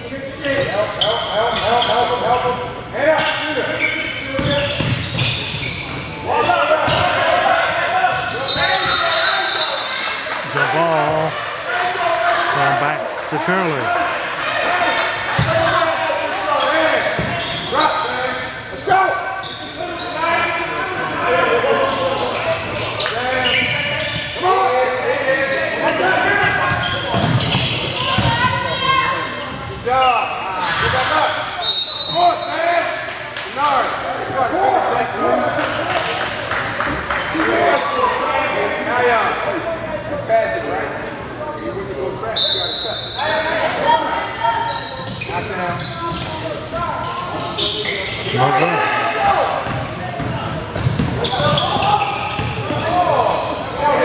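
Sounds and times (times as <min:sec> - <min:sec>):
players' voices echoing: 0:05.9 - 0:29.4.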